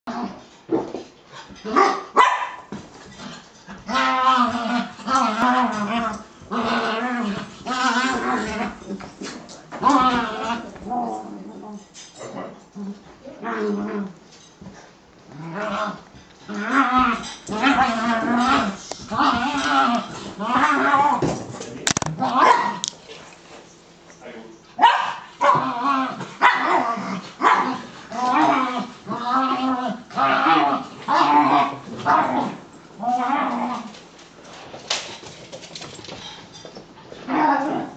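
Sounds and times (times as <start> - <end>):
small dogs growling and whining: 3.1 - 14.2, 15.3 - 21.4, 22.0 - 22.9, 25.4 - 34.0, 37.1 - 37.9.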